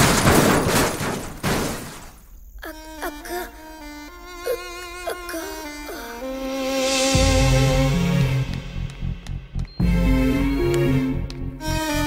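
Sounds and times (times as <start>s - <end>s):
vehicle crash: 0.0s - 2.4s
soft string music: 6.2s - 12.0s.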